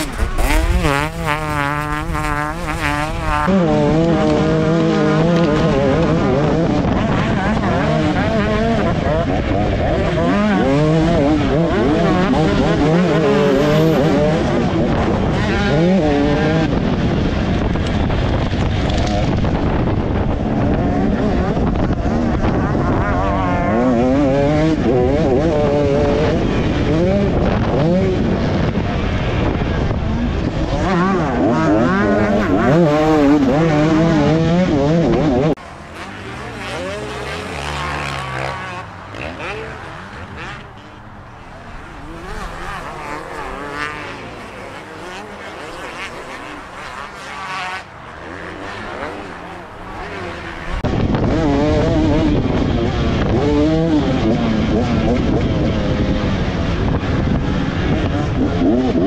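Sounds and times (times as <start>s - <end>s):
motocross bike revving: 0.0s - 59.0s.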